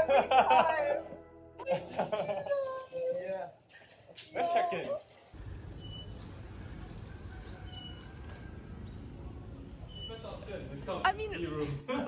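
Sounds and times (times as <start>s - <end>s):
bird chirping: 5.7s - 9.2s.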